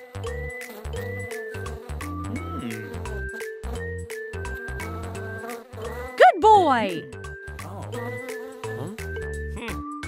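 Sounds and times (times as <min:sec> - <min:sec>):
fly buzzing: 0:00.0 - 0:09.8
background music: 0:00.0 - 0:10.0.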